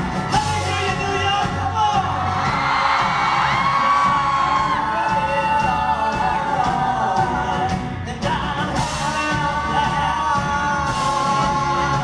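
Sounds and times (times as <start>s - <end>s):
rock band playing: 0.0s - 12.0s
man singing: 0.2s - 12.0s
audience whooping and cheering: 1.7s - 7.8s.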